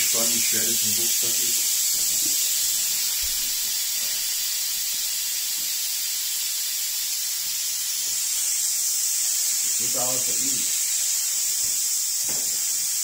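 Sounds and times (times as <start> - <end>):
air hissing out of valve: 0.0 - 13.0.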